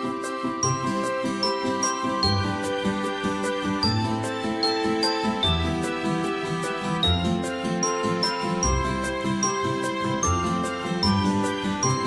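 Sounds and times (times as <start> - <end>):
light tinkly background music: 0.0 - 12.0.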